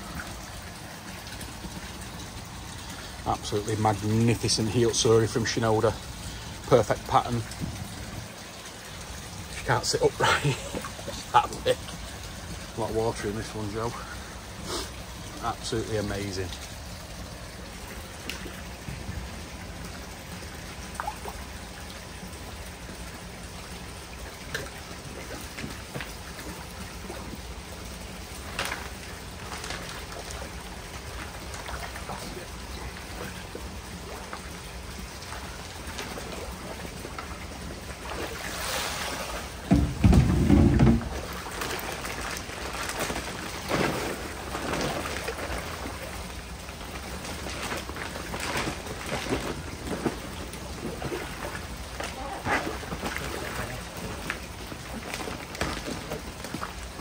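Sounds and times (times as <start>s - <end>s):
pond water splashing and trickling: 0.0s - 57.0s
small splashes: 0.0s - 57.0s
steady wash of water: 0.0s - 57.0s.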